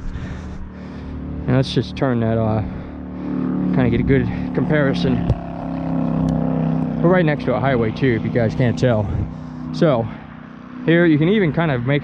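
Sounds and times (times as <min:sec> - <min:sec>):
highway traffic rumble: 0:00.0 - 0:12.0.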